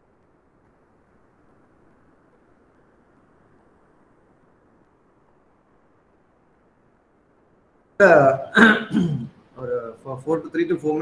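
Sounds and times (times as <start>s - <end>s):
man clearing throat or speaking: 8.0s - 9.9s.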